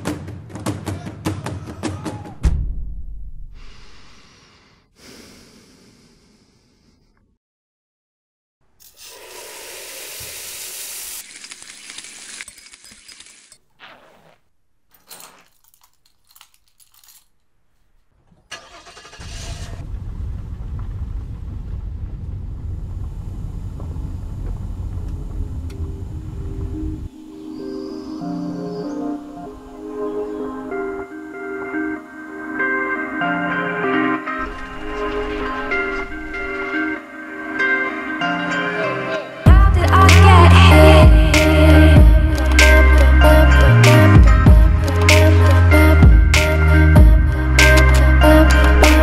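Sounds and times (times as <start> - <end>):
air hissing from valve: 8.8 - 11.3
low steady rumble: 19.2 - 27.1.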